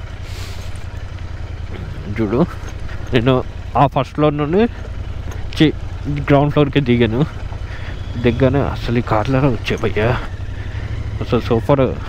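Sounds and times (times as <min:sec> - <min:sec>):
motorcycle engine running: 0:00.0 - 0:12.0
short hiss: 0:00.2 - 0:00.9.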